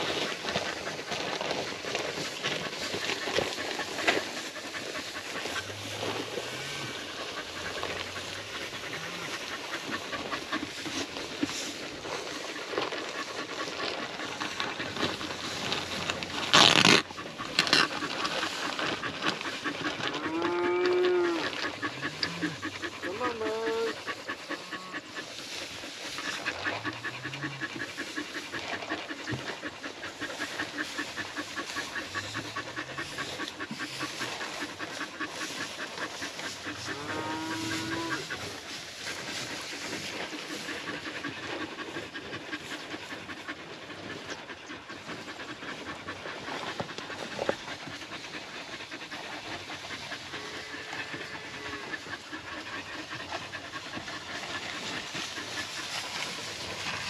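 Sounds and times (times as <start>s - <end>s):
cattle lowing: 0.0s - 57.0s
dog panting: 0.0s - 57.0s.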